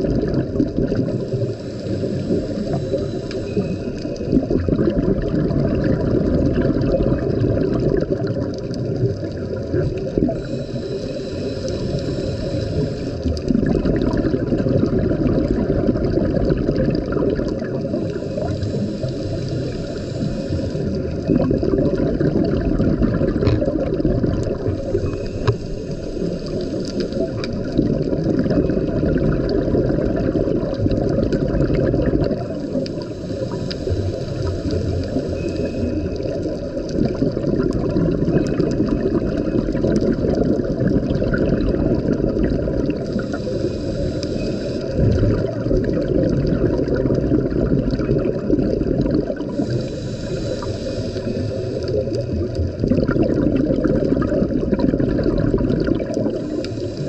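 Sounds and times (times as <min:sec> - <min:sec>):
gurgling exhaled bubbles: 0:00.0 - 0:57.0
regulator hiss: 0:00.9 - 0:04.4, 0:10.0 - 0:13.5, 0:17.8 - 0:21.3, 0:24.4 - 0:27.8, 0:32.2 - 0:37.1, 0:42.9 - 0:45.4, 0:49.4 - 0:52.7, 0:56.2 - 0:57.0.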